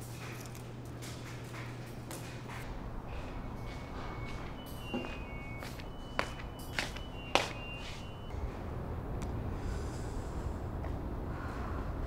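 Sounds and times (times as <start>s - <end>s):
low steady hum: 0.0s - 12.0s
footsteps on a hard floor: 3.6s - 8.1s.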